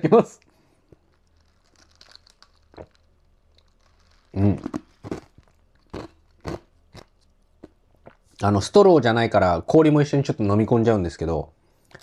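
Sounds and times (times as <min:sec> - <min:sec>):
ice crunched between teeth: 0:01.0 - 0:07.8.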